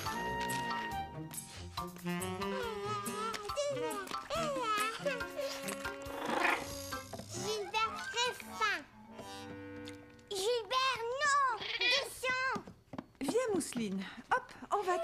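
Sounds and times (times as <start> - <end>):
light cartoon background music: 0.0 - 12.0.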